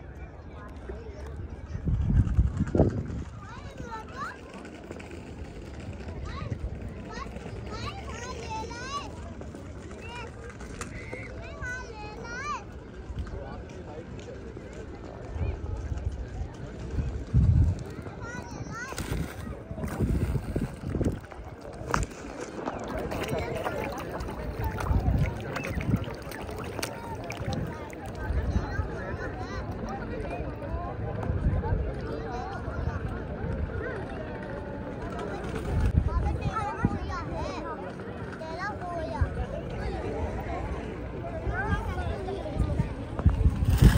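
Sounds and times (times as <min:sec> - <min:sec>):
people chattering: 0:00.0 - 0:43.9
wind on microphone: 0:01.4 - 0:04.2, 0:15.3 - 0:34.1, 0:35.2 - 0:37.6, 0:39.1 - 0:43.9
children calling and squealing: 0:18.0 - 0:30.0.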